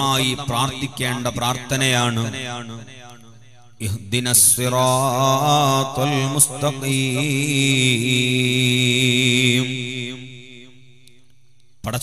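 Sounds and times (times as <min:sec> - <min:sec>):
man chanting over loudspeakers: 0:00.0 - 0:11.0.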